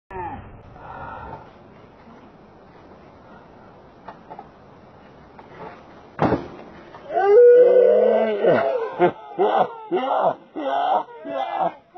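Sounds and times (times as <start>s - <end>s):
boys yelling excitedly: 8.4s - 11.9s.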